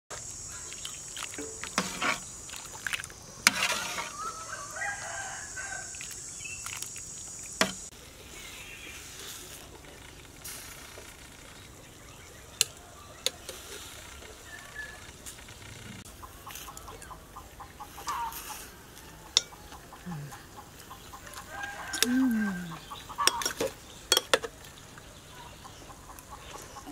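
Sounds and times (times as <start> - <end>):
rooster crowing: 4.1 - 6.0, 21.2 - 23.4
hens clucking: 13.3 - 23.8, 25.4 - 26.9
ladle clinking against pot: 23.2 - 24.5.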